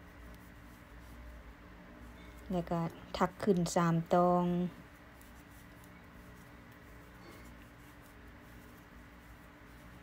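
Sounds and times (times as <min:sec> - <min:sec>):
knitting needles scratching yarn: 0:00.0 - 0:10.0.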